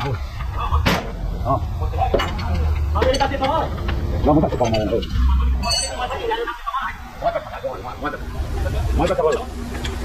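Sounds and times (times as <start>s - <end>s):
low rumble of shop noise: 0.0s - 10.0s.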